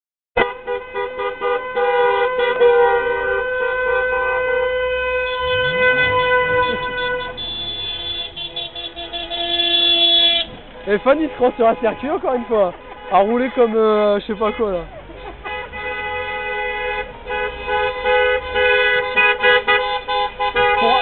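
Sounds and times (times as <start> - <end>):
car horns honking: 0.4 - 21.0.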